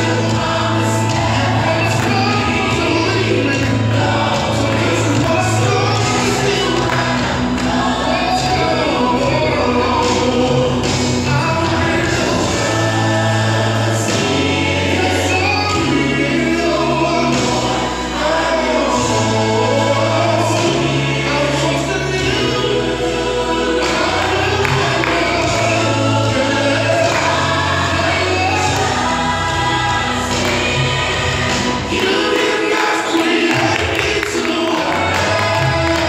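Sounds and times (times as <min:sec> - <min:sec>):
sustained bass line: 0:00.0 - 0:32.1
gospel choir singing: 0:00.0 - 0:36.0.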